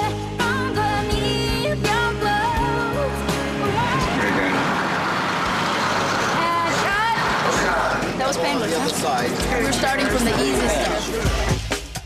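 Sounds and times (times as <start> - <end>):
bus engine running: 2.8 - 11.2
street traffic noise: 3.0 - 11.7.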